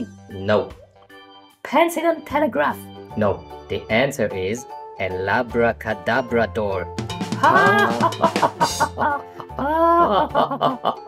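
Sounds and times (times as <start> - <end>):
background music: 0.0 - 11.0
cartoon character cackling laughter: 7.4 - 11.0.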